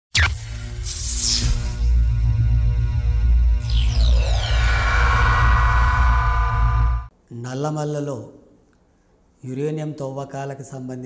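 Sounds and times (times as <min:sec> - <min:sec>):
deep bass drone: 0:01.8 - 0:07.1
shimmering high downward sweep: 0:03.6 - 0:07.1.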